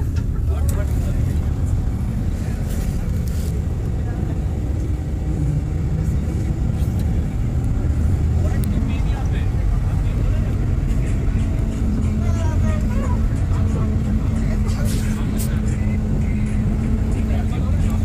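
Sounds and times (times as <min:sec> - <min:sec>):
bus engine and road noise: 0:00.0 - 0:18.0
constant low hum: 0:00.0 - 0:18.0
faint voices: 0:00.0 - 0:18.0.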